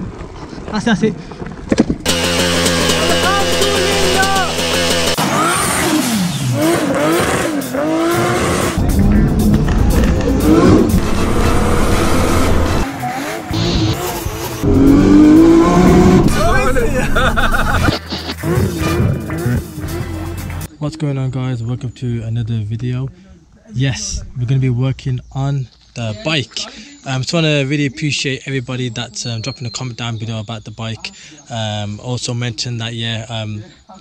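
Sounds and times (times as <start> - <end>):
car engine revving: 2.1 - 20.7
voices: 2.3 - 5.2, 15.6 - 33.8
music: 8.0 - 12.8, 16.2 - 20.7.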